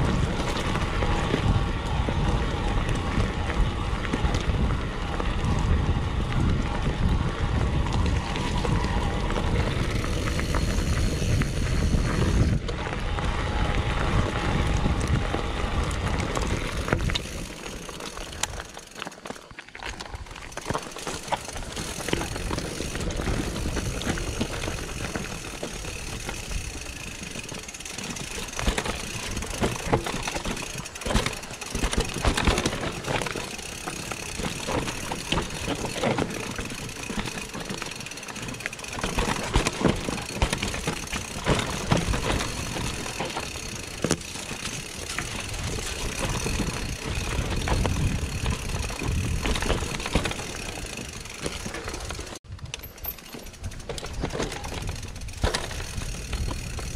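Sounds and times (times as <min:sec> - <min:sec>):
mountain bike rolling and rattling: 0:00.0 - 0:56.9
wheels knocking on rocks: 0:00.0 - 0:56.9.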